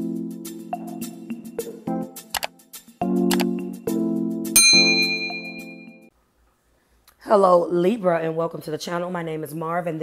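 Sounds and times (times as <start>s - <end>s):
synth music chords: 0.0s - 6.1s
bell-like chime: 4.6s - 6.1s.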